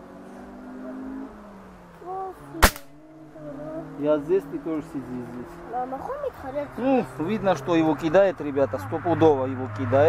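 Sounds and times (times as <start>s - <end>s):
air rifle shot crack: 2.6s - 3.0s.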